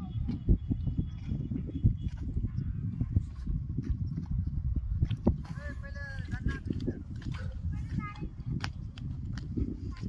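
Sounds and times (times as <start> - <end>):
wind buffeting microphone: 0.0 - 10.0
footsteps on loose soil: 0.2 - 10.0.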